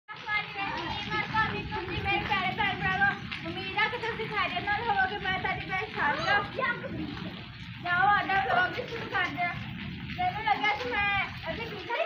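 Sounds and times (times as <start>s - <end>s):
children calling and chattering: 0.1s - 12.0s.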